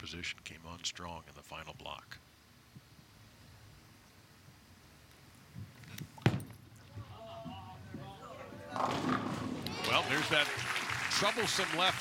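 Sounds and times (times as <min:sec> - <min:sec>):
bowling ball rolling on wooden lane: 0:08.7 - 0:09.7.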